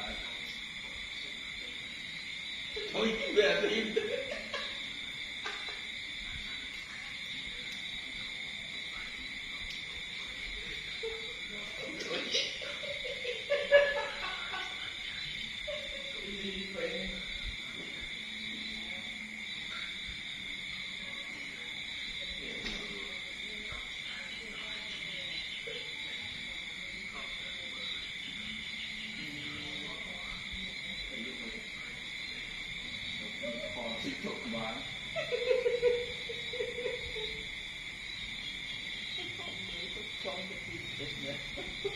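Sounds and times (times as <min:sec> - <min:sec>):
faint indistinct voices: 0:00.0 - 0:41.9
night insects chorus: 0:00.0 - 0:41.9.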